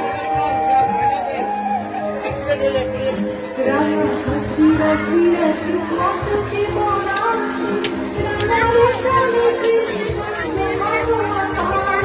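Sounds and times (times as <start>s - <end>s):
crowd and children voices: 0.0s - 12.0s.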